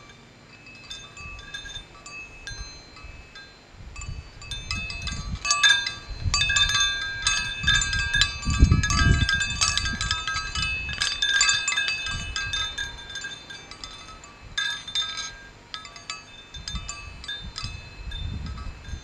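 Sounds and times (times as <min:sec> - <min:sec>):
metal wind chime ringing: 0:00.0 - 0:19.0
wind rumble on microphone: 0:00.0 - 0:19.0.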